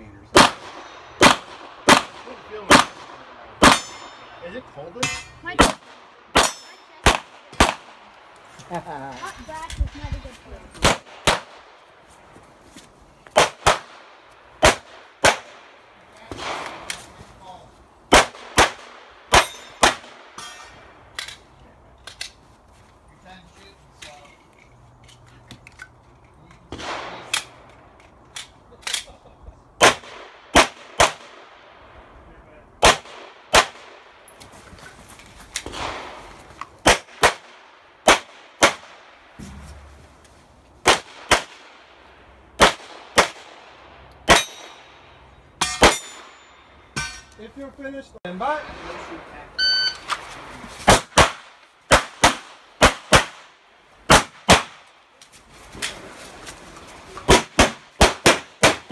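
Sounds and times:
pistol shots: 0.3s - 4.1s, 5.0s - 8.0s, 10.8s - 11.6s, 13.4s - 15.7s, 18.1s - 20.4s, 29.8s - 31.5s, 32.8s - 34.0s, 36.8s - 39.0s, 40.8s - 41.8s, 42.6s - 43.6s, 44.2s - 44.8s, 50.9s - 54.9s, 57.3s - 58.9s.

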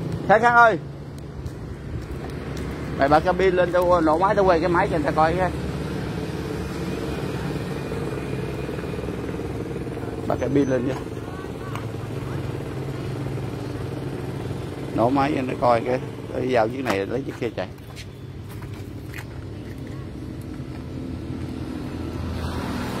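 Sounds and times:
truck diesel engine idling: 3.4s - 20.4s.

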